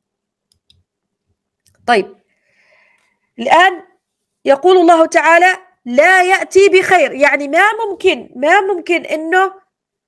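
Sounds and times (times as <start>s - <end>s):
woman's voice: 1.8s - 2.2s, 3.4s - 9.7s.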